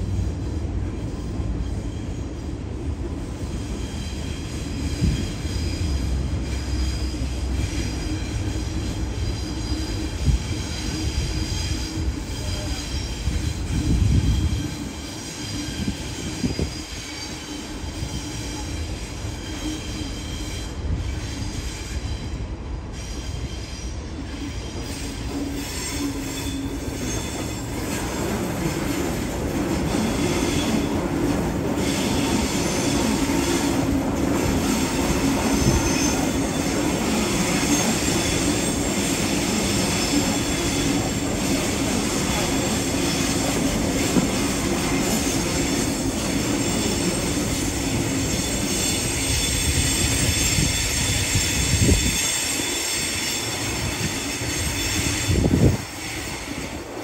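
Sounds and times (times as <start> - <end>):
train rumble: 0.0 - 57.0
train wheels squealing: 0.0 - 57.0.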